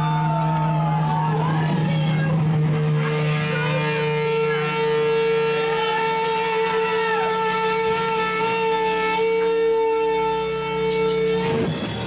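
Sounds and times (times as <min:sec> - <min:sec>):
electric guitar drone: 0:00.0 - 0:12.0
sliding high guitar tones: 0:00.0 - 0:12.0.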